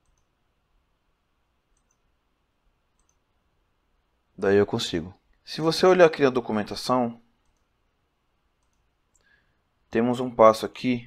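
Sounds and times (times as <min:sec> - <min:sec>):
faint computer mouse clicks: 0:00.0 - 0:00.3, 0:01.7 - 0:02.1, 0:02.9 - 0:03.2, 0:08.6 - 0:09.3.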